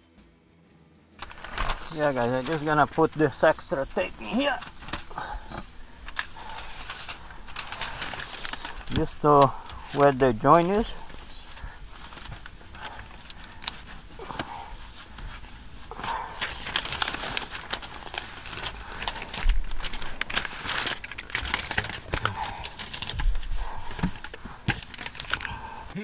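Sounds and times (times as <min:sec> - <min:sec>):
foil crinkling and crackling: 0:01.2 - 0:26.0.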